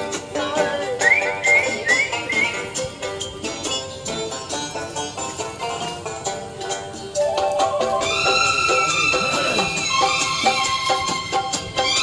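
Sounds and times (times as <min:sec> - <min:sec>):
whistled melody: 0:00.9 - 0:03.3.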